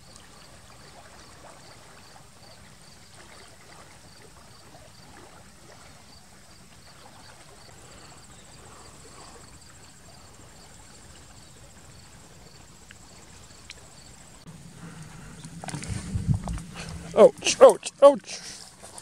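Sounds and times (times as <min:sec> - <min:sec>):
insect chirping: 0:00.0 - 0:19.0
rustling through dense brush: 0:14.5 - 0:19.0.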